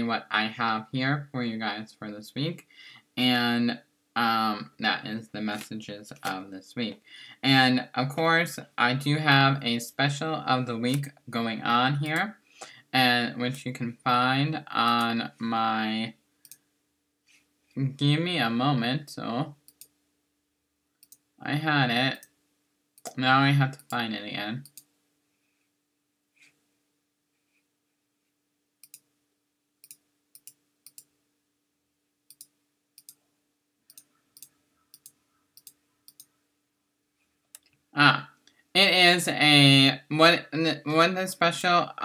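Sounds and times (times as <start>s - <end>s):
man speaking: 0.0s - 16.2s, 17.8s - 19.6s, 21.4s - 22.2s, 23.1s - 24.7s, 38.0s - 42.0s
faint steady hum: 0.0s - 42.0s
computer mouse clicks: 16.4s - 16.6s, 19.6s - 20.0s, 21.0s - 21.3s, 24.6s - 24.9s, 28.8s - 29.1s, 29.8s - 31.1s, 32.3s - 33.2s, 33.9s - 36.4s.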